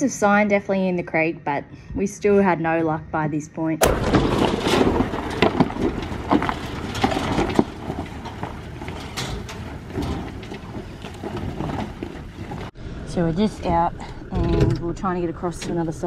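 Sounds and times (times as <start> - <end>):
tyres crunching on stones: 3.8 - 12.8
low engine rumble: 3.9 - 16.0.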